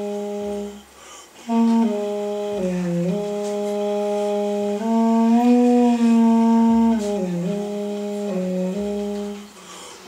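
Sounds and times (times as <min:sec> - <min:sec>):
duduk playing slow melody: 0:00.0 - 0:09.7.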